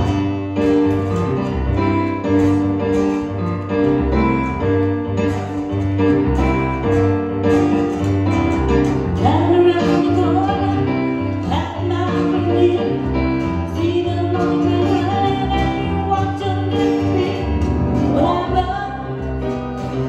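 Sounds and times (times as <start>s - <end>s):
acoustic guitar: 0.0s - 20.0s
keyboard piano chords: 0.0s - 20.0s.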